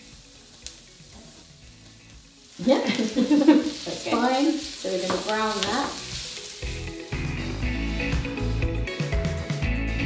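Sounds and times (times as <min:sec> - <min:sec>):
onions sizzling in a frying pan: 0:00.0 - 0:09.5.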